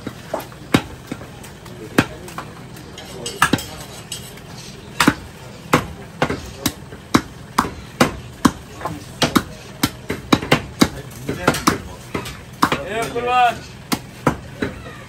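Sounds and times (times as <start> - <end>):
cleaver chopping meat on wooden block: 0.0 - 2.4, 3.3 - 3.8, 4.9 - 13.2, 13.9 - 14.8.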